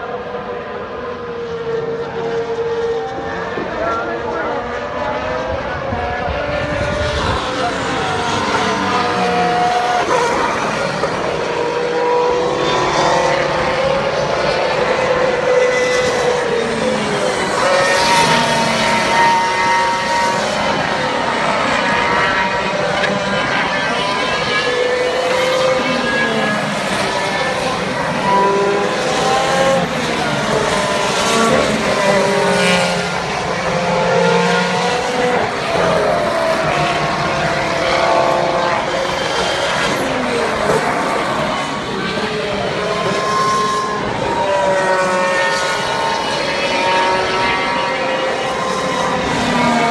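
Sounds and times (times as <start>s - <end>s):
racing cars passing: 0.0s - 49.9s.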